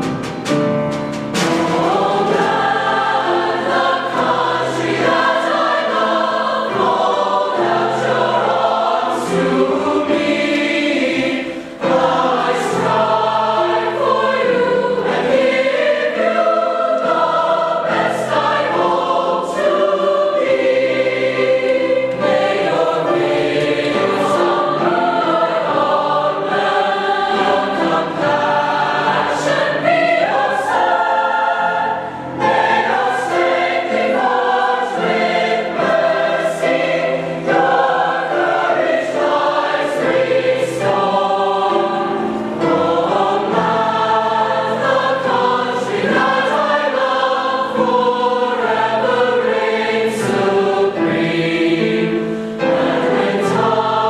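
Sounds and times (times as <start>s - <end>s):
mixed choir singing: 1.2s - 54.0s.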